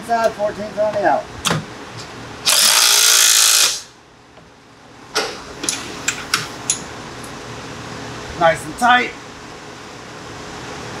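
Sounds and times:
cordless drill driving bolt: 2.5s - 3.8s.

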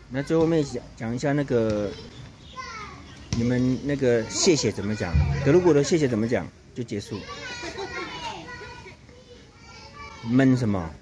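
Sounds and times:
children talking softly: 0.0s - 11.0s.

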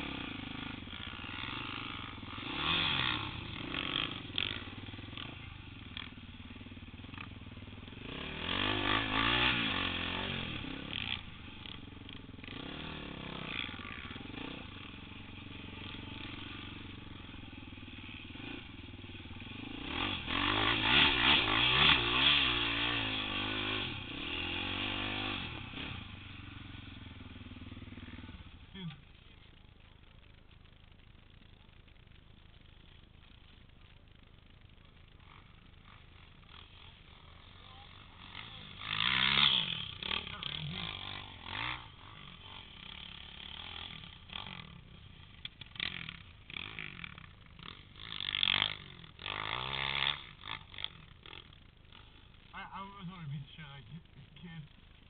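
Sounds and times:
atv engines revving: 0.0s - 55.0s.

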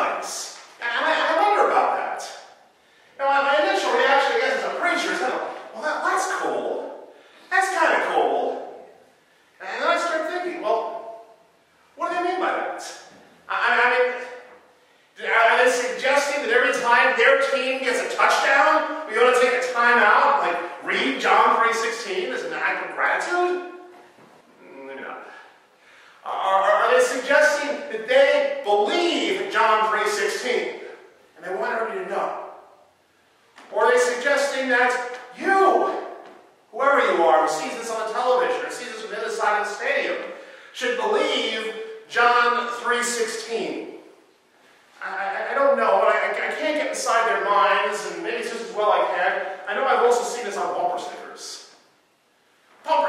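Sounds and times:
man preaching: 0.0s - 23.9s, 24.6s - 32.9s, 33.6s - 44.2s, 44.9s - 51.9s.

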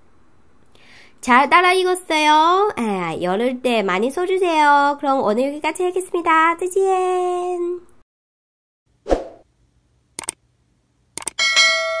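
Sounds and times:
quick clicks: 10.2s - 10.4s, 11.2s - 11.4s
notification bell ding: 11.4s - 12.0s.

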